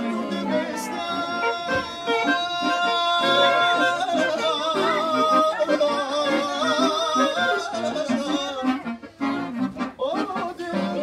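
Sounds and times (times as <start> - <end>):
man singing with vibrato: 0.0 - 9.0, 10.0 - 11.0
pulsing accordion: 0.0 - 11.0.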